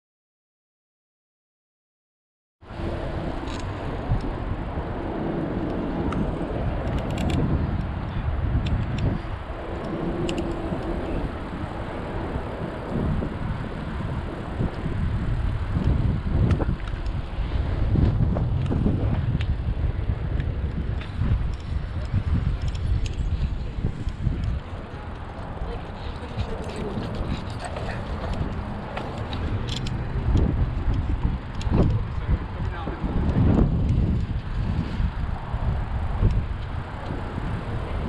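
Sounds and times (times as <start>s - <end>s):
bicycle tyre rumble: 2.6s - 38.0s
wind rush: 2.6s - 38.0s.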